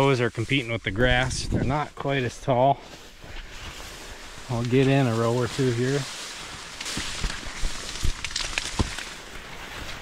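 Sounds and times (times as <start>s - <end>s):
corn leaves rustling: 0.0s - 10.0s
sharp crackles: 3.6s - 10.0s.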